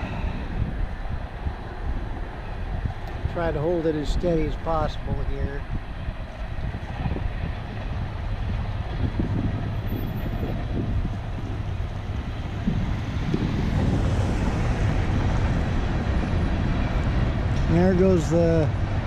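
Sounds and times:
freight train rumbling past: 0.0 - 19.0.

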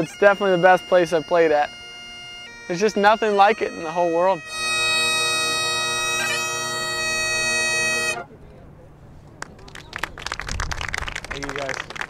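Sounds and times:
bagpipes: 0.0 - 8.3
scattered handclaps: 9.4 - 12.0.

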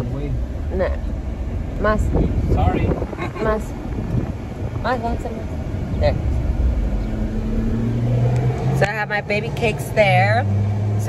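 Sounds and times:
car road and engine noise: 0.0 - 11.0.

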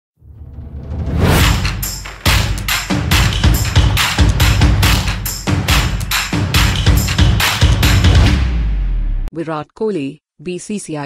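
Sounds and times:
whoosh: 0.2 - 1.9.

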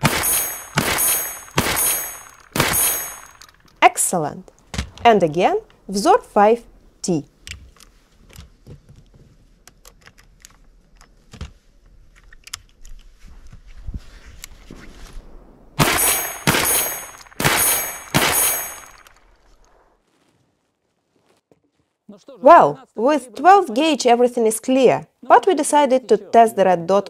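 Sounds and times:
shotgun shots: 0.0 - 3.6, 14.7 - 19.4.

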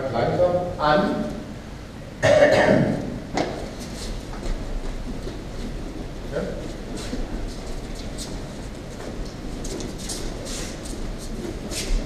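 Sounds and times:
person coughing: 2.2 - 3.0
scuffs on training mats: 3.4 - 12.0.

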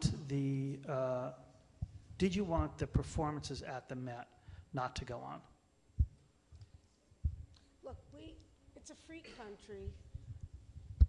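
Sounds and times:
microphone handling thumps: 0.0 - 0.3, 1.8 - 3.2, 6.0 - 6.2, 7.2 - 8.2, 9.8 - 11.0
woman speaking: 7.8 - 10.1.

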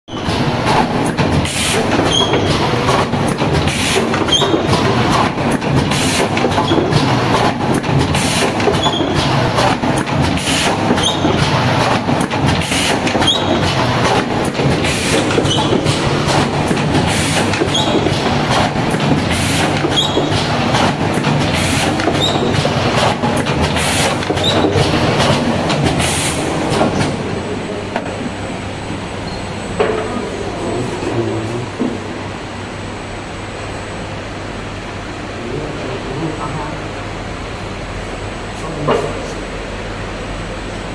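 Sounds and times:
machine clattering with air bursts: 0.1 - 28.4.

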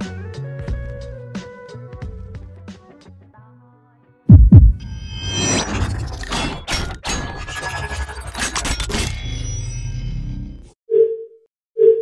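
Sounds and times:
deep booming thumps: 4.3 - 4.9
sharp hits: 4.3 - 8.8
whoosh with high ringing tones: 4.7 - 10.5.

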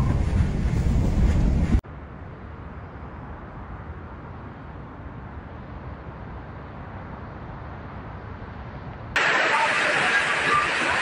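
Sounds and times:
low wind rumble: 0.0 - 11.0
wind-driven rain rushing: 9.1 - 11.0.

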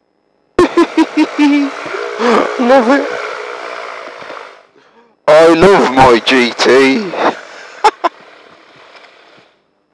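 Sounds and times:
microlight engine through headset: 0.6 - 4.8.

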